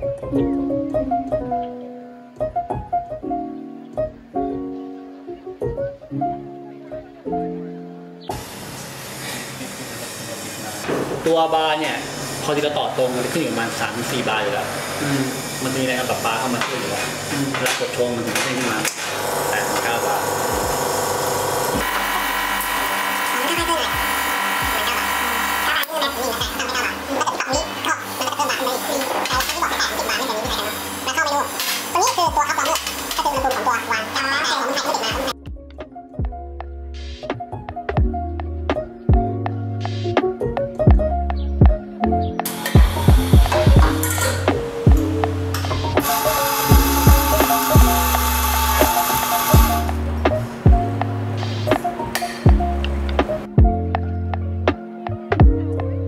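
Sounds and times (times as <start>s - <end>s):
espresso machine pump humming: 11.8s - 17.4s, 19.1s - 27.1s, 46.0s - 50.0s
music with heavy beat: 20.5s - 20.8s, 35.1s - 55.8s.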